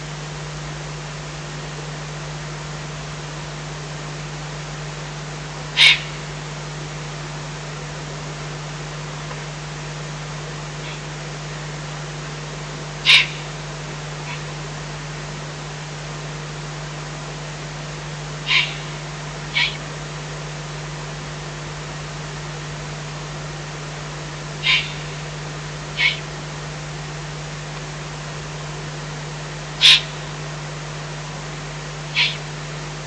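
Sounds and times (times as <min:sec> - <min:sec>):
owl chicks rasping calls: 0:05.7 - 0:06.4, 0:10.8 - 0:11.1, 0:13.0 - 0:13.6, 0:14.2 - 0:14.6, 0:18.4 - 0:19.9, 0:24.6 - 0:25.3, 0:25.9 - 0:26.4, 0:29.8 - 0:30.3, 0:32.1 - 0:32.5.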